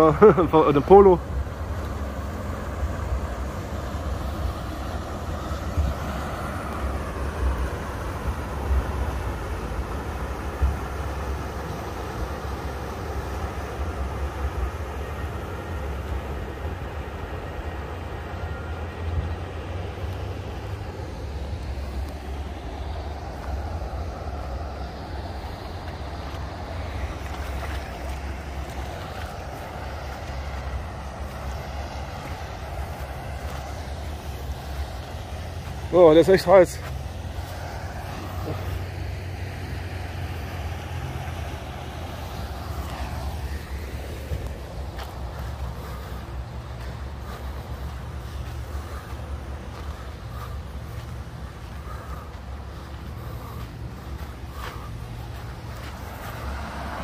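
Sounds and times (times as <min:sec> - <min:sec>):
barge engine droning: 0:00.0 - 0:57.0.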